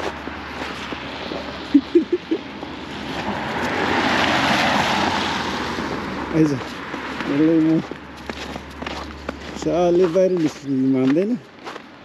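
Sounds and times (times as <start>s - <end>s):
tyres hissing on wet road: 2.6s - 7.5s.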